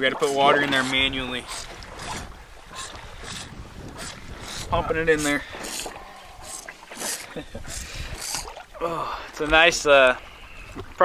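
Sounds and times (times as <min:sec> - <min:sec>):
wind buffeting microphone: 0:00.0 - 0:08.6
water slapping boat hull: 0:00.0 - 0:11.0.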